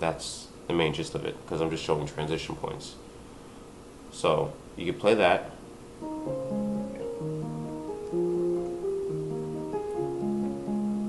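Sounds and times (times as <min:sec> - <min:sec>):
digital keyboard playing chords: 0:06.0 - 0:11.0.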